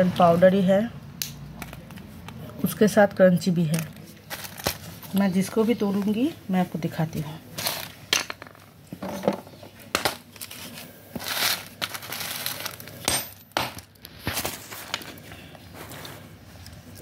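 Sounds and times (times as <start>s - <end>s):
plastic sheet crinkling: 3.7s - 6.4s, 10.3s - 13.0s.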